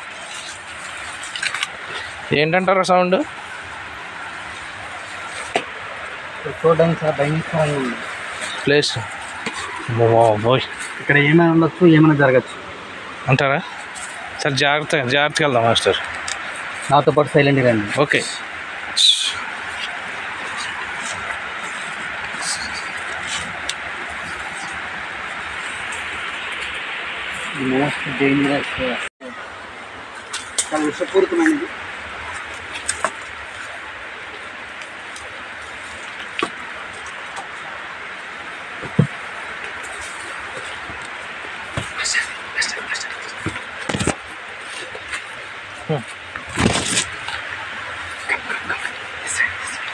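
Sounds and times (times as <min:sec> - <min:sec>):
steady background hiss: 0:00.0 - 0:49.9
man speaking: 0:06.4 - 0:12.6, 0:27.5 - 0:29.4, 0:30.7 - 0:31.8.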